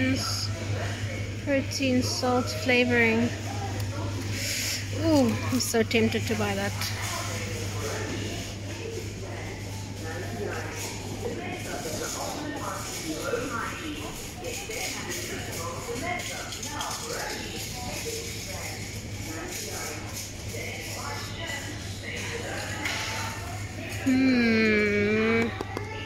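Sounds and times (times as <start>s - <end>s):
faint chatter of shoppers: 0.0s - 26.0s.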